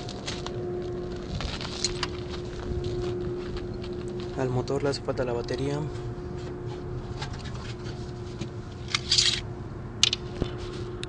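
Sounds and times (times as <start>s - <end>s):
scratchy rustle: 0.0s - 4.4s
low hum: 0.0s - 11.0s.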